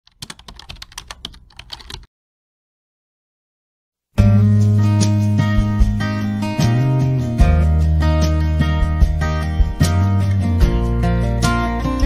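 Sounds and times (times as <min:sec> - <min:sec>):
computer keyboard typing: 0:00.1 - 0:02.1.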